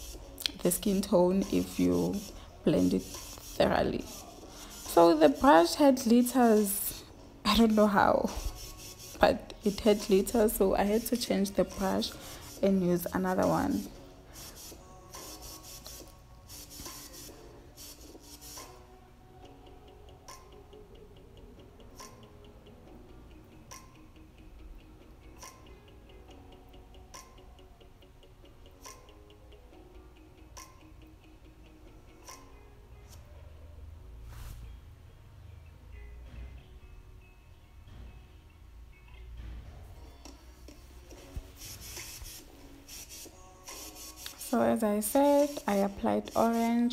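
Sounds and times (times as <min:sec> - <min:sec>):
brush rubbing against skin: 0:00.0 - 0:05.8, 0:08.2 - 0:18.7, 0:41.2 - 0:46.9
soft music with ticking beat: 0:00.0 - 0:46.9.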